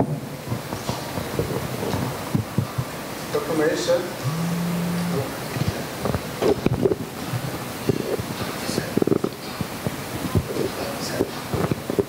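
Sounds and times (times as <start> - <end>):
low steady hum: 4.2 - 5.5.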